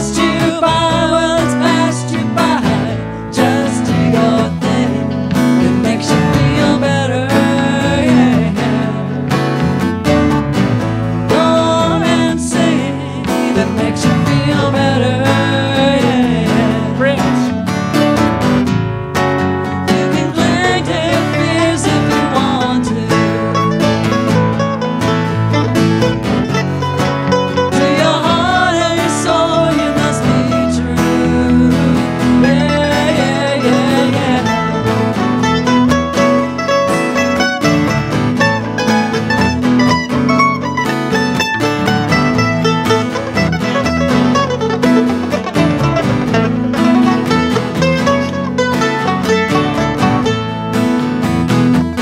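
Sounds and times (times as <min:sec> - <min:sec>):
acoustic guitar strumming: 0:00.0 - 0:52.0
electric bass: 0:00.0 - 0:52.0.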